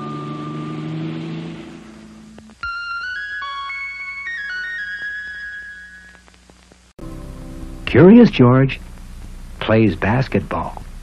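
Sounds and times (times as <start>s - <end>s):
car engine driving off: 0.0s - 2.6s.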